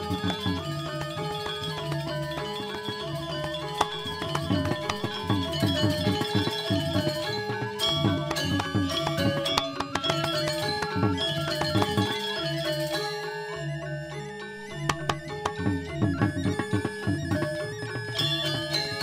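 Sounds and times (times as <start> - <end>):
drums: 0.0 - 13.2, 14.9 - 19.0
gamelan metallophones playing: 0.0 - 19.0
gongs: 0.0 - 19.0.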